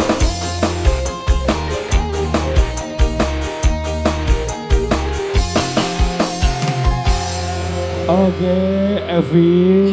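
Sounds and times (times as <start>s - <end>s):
drum beat: 0.0s - 8.2s
bass notes: 0.0s - 9.9s.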